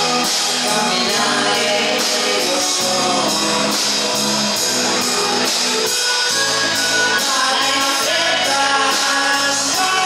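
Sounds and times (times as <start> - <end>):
guitars: 0.0 - 10.0
rock band playing: 0.0 - 10.0.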